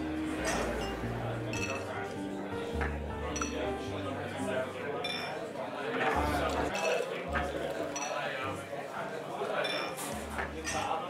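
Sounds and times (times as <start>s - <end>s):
murmur of chatter: 0.0s - 11.0s
glasses and cutlery clinking: 0.3s - 8.4s, 9.5s - 11.0s.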